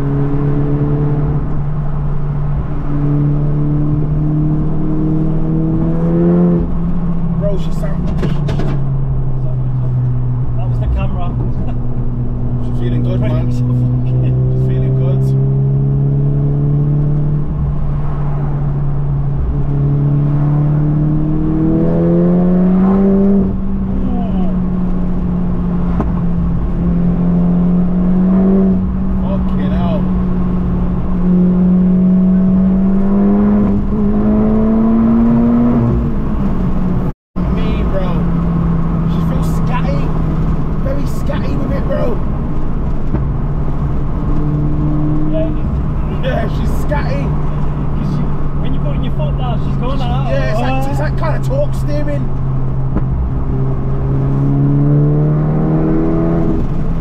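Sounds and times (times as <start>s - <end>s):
car engine drone in cabin: 0.0s - 57.0s.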